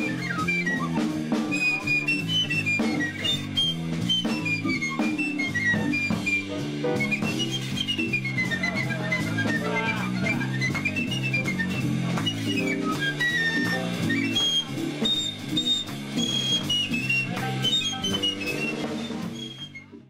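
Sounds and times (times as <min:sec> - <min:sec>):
high flute melody: 0:00.0 - 0:20.0
percussion: 0:00.0 - 0:20.0.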